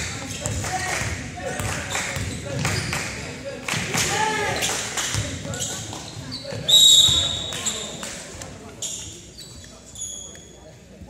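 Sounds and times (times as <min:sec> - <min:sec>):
sneakers squeaking on floor: 0:01.7 - 0:03.0, 0:04.4 - 0:08.1, 0:08.7 - 0:10.8
referee's whistle: 0:06.3 - 0:08.0.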